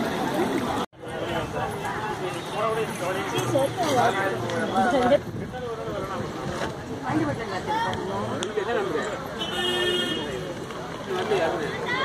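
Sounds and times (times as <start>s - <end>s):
people talking: 0.0s - 12.0s.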